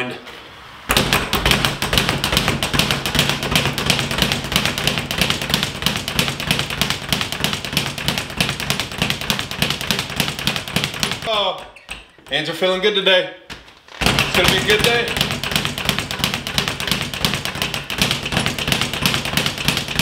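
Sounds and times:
speed bag rattling: 0:00.9 - 0:11.5, 0:14.0 - 0:20.0.

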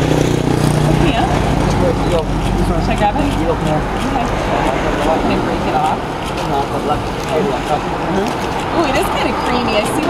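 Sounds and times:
road traffic rumble: 0:00.0 - 0:10.0
voices talking: 0:00.7 - 0:10.0.

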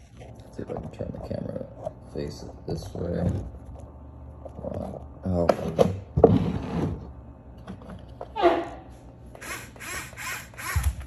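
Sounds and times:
electric motors whining: 0:09.3 - 0:11.0.

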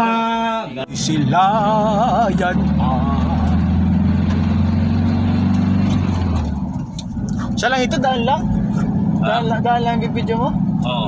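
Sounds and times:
car engine and road noise: 0:00.6 - 0:11.0.

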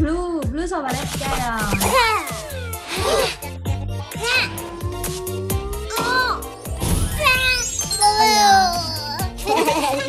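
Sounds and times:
cartoon music: 0:01.5 - 0:10.0
high cat-like voice: 0:04.2 - 0:06.5, 0:07.2 - 0:09.2.

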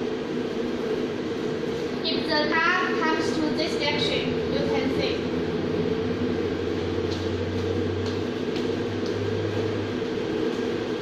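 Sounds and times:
steady mechanical hum: 0:00.0 - 0:11.0
low drone: 0:03.4 - 0:11.0.

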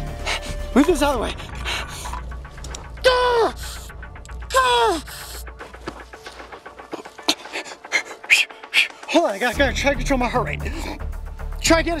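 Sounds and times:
heavy breathing: 0:00.0 - 0:00.7, 0:01.3 - 0:04.2, 0:04.8 - 0:09.1
man groaning in pain: 0:04.5 - 0:05.2.

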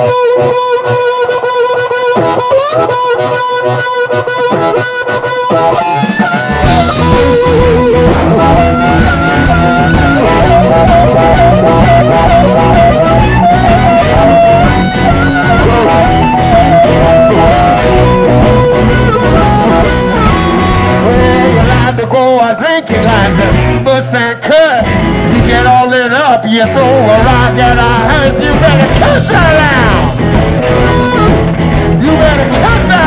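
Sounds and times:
amplified harmonica wailing: 0:00.0 - 0:33.0
bass: 0:00.0 - 0:33.0
drums: 0:00.0 - 0:33.0
electric guitar: 0:00.0 - 0:33.0.

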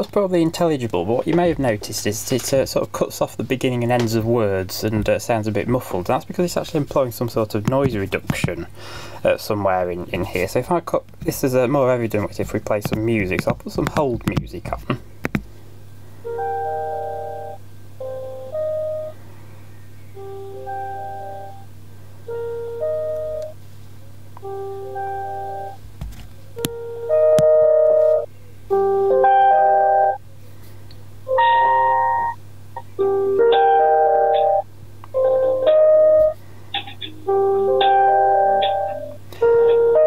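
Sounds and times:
steady low hum: 0:00.0 - 0:40.0
muffled piano hold music: 0:16.2 - 0:19.2, 0:20.1 - 0:23.6, 0:24.4 - 0:25.8, 0:26.6 - 0:30.2, 0:31.2 - 0:40.0.

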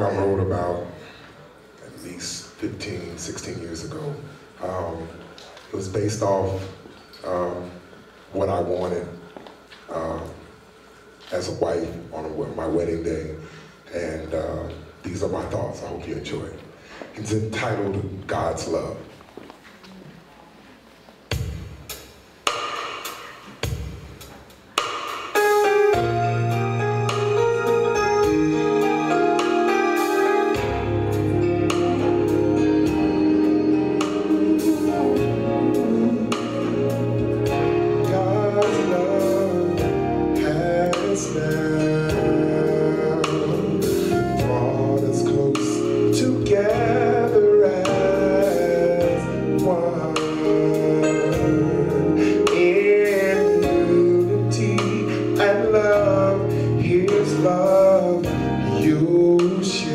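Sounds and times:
instrumental accompaniment: 0:21.2 - 0:59.9
man singing into a microphone: 0:32.6 - 0:59.9.

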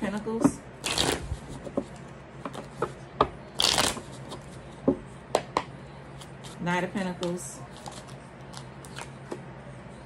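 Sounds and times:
cards being shuffled: 0:03.6 - 0:04.6.

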